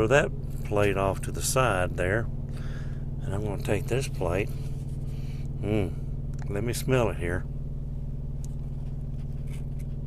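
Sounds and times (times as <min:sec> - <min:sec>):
diesel truck engine idling: 0:00.0 - 0:10.0.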